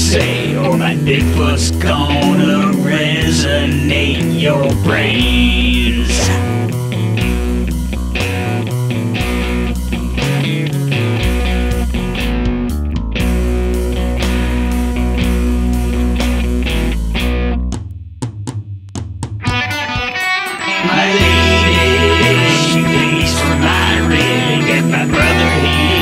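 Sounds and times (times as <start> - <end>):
instrumental rock music: 0.0 - 26.0.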